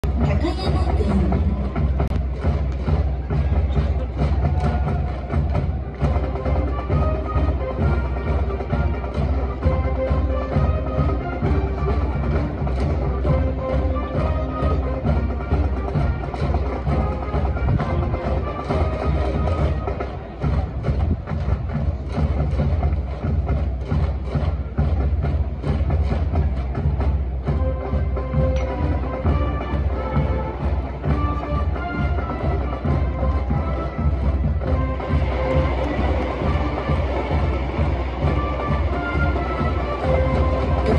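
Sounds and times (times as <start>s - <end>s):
brass band melody: 0.0s - 40.9s
driving drumbeat: 0.0s - 40.9s.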